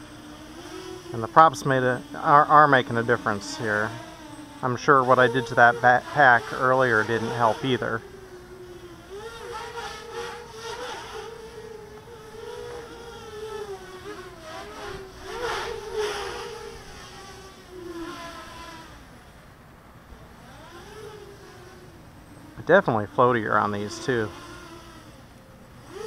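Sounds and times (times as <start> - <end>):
quadcopter motors buzzing: 0.0 - 26.0.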